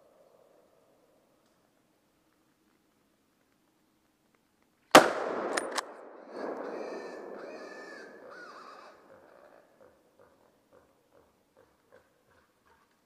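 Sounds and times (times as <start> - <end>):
rifle shot: 4.9 - 7.4.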